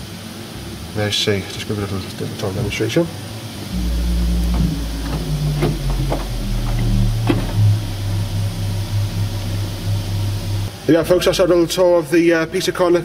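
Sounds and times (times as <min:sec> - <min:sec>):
deep organ bass notes: 0:03.6 - 0:11.6.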